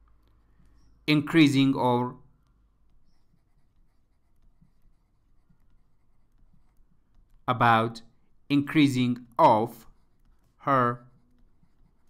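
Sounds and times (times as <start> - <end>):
stylus tapping and scratching tablet: 0.0 - 12.0.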